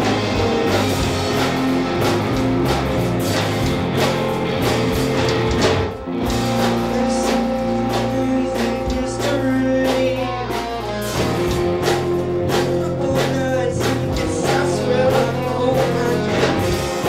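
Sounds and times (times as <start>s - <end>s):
drum kit: 0.0s - 17.0s
electric guitars: 0.0s - 17.0s.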